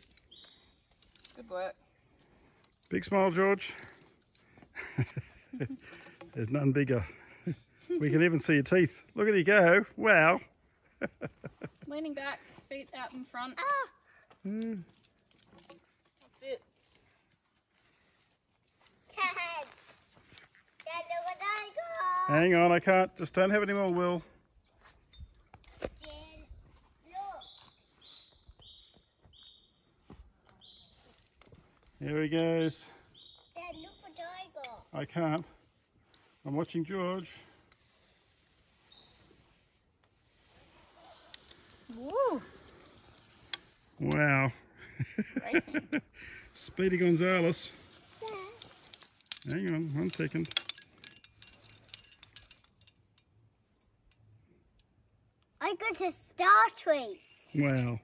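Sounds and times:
high whistled bird calls: 0.1 - 1.1, 27.1 - 31.2, 33.0 - 34.5, 38.7 - 39.8.

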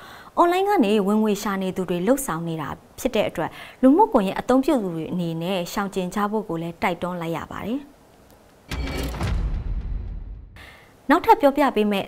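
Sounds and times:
woman speaking: 0.4 - 8.0, 11.1 - 12.0.

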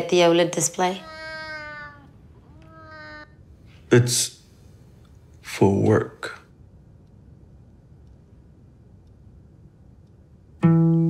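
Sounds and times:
cat meowing: 0.9 - 3.4.

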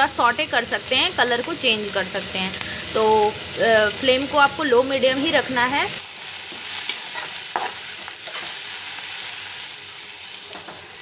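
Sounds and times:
onions sizzling in oil: 0.0 - 11.0
spoon scraping a pan: 6.5 - 8.6.

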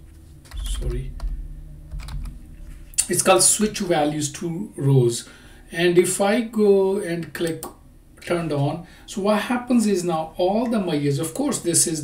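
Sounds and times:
steady low hum: 0.0 - 12.0
keyboard typing: 0.5 - 2.4.

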